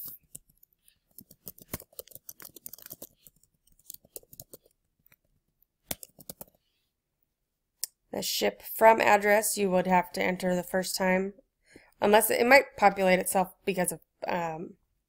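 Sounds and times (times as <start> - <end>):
faint keyboard typing: 0.0 - 6.7.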